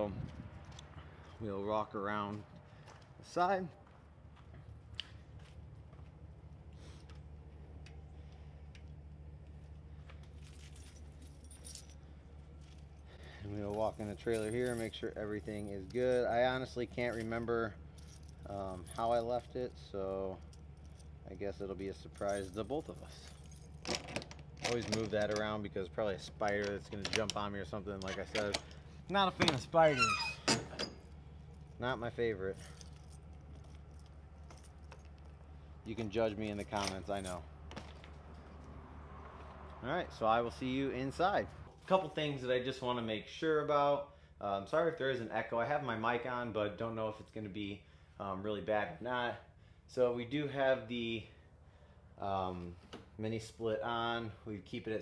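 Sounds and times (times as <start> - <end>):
footsteps on dirt floor: 2.2 - 11.4, 37.6 - 38.7
keys jingling: 10.3 - 13.1, 13.7 - 19.6, 21.9 - 25.4, 32.5 - 37.4.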